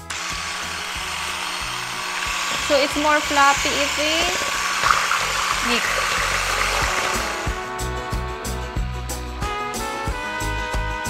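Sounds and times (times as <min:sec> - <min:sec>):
electric hand mixer whipping: 0:00.0 - 0:07.9
background music with beat: 0:06.4 - 0:11.0.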